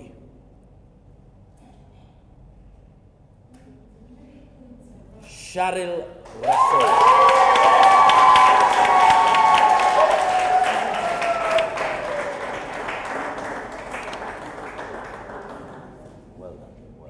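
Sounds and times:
audience applauding and cheering: 6.3 - 16.3.

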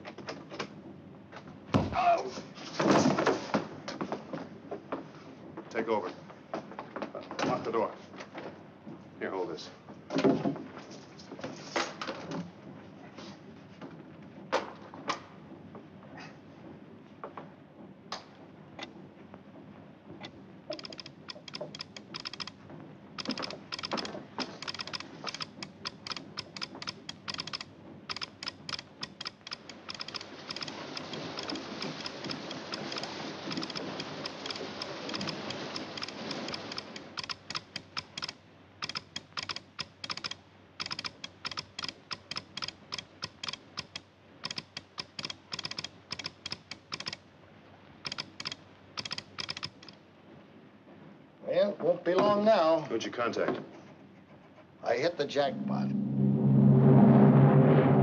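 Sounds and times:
telegraph key clicking morse code: 20.7 - 22.6, 23.2 - 47.2, 48.0 - 50.0.

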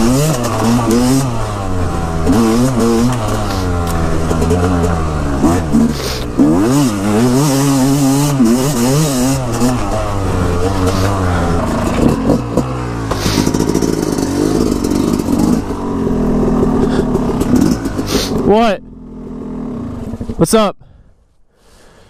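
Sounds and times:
dirt bike engine revving: 0.0 - 20.4.

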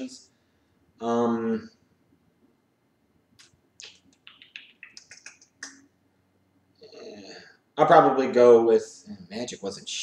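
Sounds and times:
soft mouth clicks: 3.4 - 5.8.

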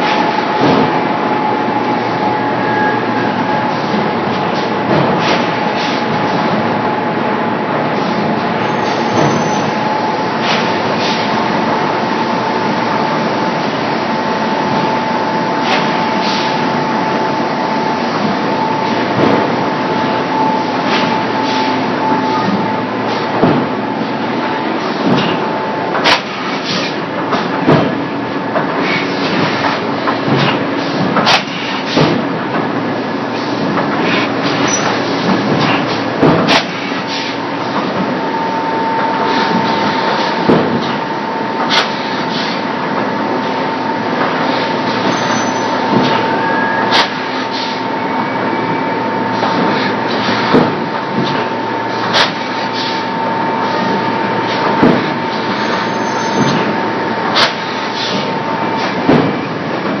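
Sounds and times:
production line machinery running: 0.0 - 60.0.

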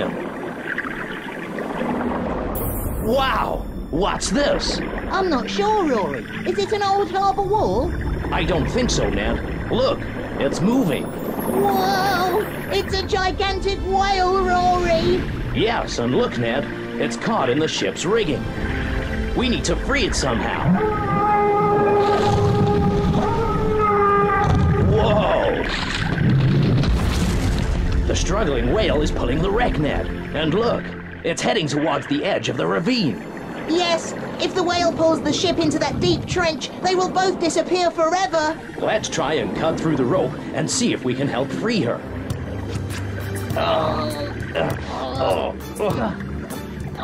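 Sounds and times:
low underwater rumbling: 0.0 - 47.0
low rumble: 0.2 - 16.9
whale calls: 20.2 - 26.2.

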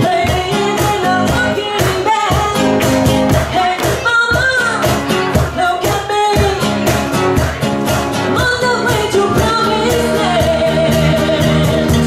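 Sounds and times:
woman singing: 0.0 - 7.5, 8.2 - 12.0
cajon beat: 0.0 - 12.0
strummed acoustic guitars: 0.0 - 12.0.

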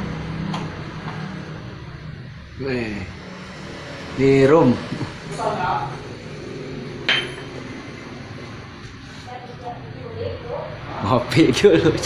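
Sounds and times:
hard object clinking: 7.1 - 7.6.

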